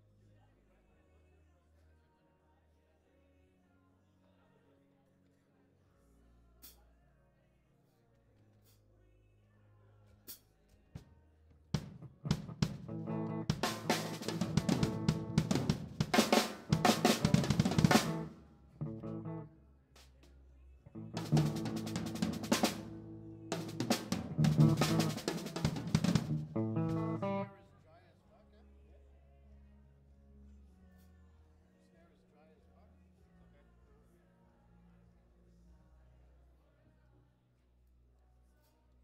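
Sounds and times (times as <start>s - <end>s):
live rock band: 12.0s - 19.5s, 20.9s - 27.5s.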